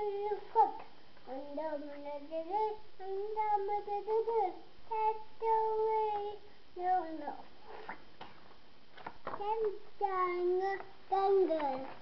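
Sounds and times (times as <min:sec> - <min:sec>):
child singing: 0:00.0 - 0:07.5, 0:09.4 - 0:12.0.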